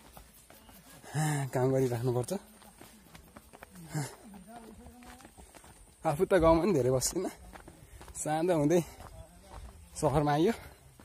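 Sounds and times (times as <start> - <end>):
footsteps on dirt path: 0.0 - 11.0
man's voice: 1.0 - 3.0, 3.7 - 11.0.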